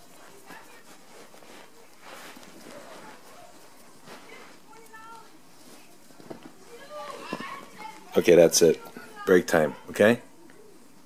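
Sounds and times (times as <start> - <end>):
soft rustling on blanket: 0.0 - 10.1
faint voices: 0.0 - 11.0.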